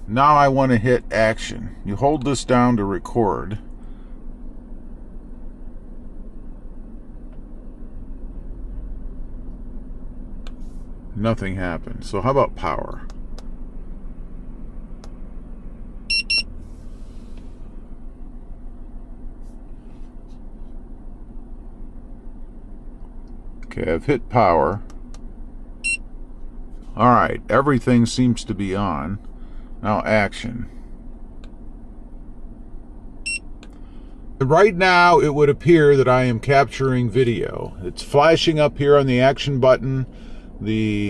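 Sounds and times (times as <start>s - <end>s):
low hum in truck cabin: 0.0s - 41.0s
short high beeps: 16.1s - 16.5s, 33.3s - 33.5s.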